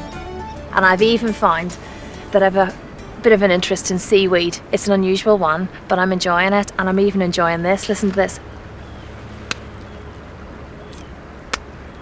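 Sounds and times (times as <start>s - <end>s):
wind and shore rumble: 0.0s - 12.0s.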